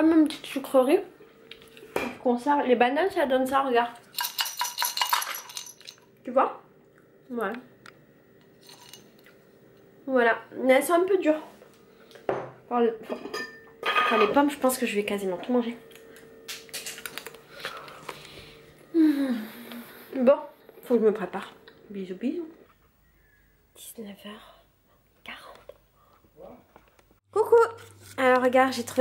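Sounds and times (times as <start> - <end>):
dried fruit rattling in glass jar: 4.1 - 6.0, 8.6 - 9.1.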